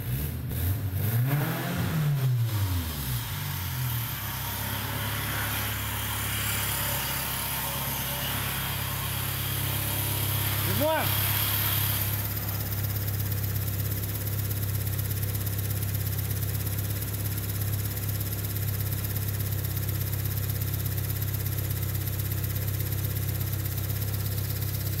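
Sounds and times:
car engine idling: 0:02.1 - 0:25.0.

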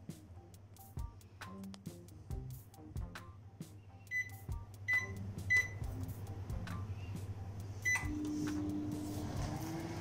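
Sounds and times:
microwave keypad beeps: 0:04.1 - 0:05.8, 0:07.8 - 0:08.3.

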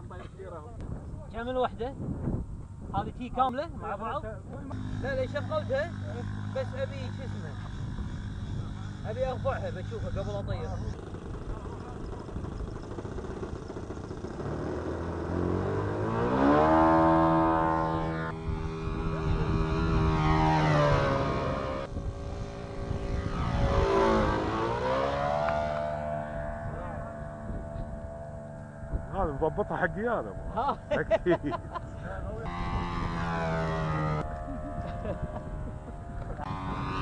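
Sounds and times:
model airplane engine: 0:04.5 - 0:37.0.

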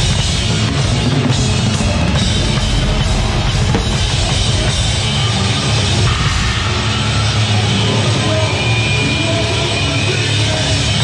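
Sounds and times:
rapid bass drum strokes: 0:00.0 - 0:08.3
distorted guitars and bass: 0:00.0 - 0:11.0.

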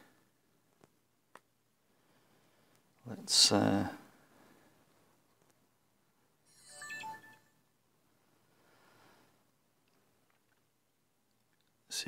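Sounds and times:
smartphone electronic chime: 0:06.5 - 0:07.6.

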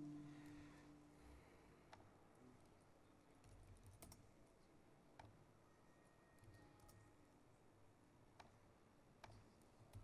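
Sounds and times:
faint laptop keystrokes: 0:03.4 - 0:04.3.

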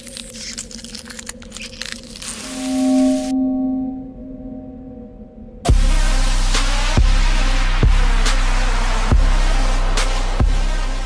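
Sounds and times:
steady low drone: 0:00.0 - 0:11.0.

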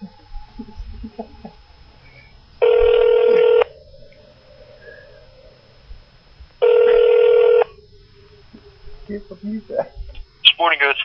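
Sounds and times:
telephone ringback tone: 0:02.2 - 0:03.8, 0:06.6 - 0:07.8.

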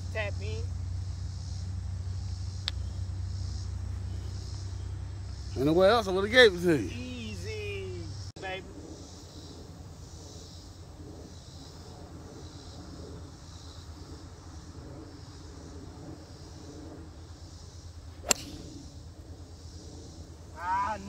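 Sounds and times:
golf club striking ball: 0:18.2 - 0:18.8.

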